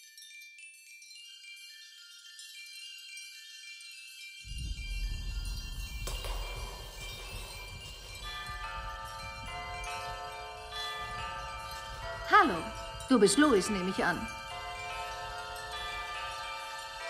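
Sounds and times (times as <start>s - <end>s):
high sustained chiming tones: 0.0s - 17.0s
deep low rumble: 4.5s - 13.1s.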